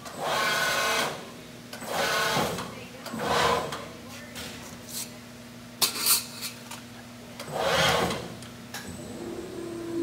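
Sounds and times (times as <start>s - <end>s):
machine motors whirring: 7.4s - 10.0s.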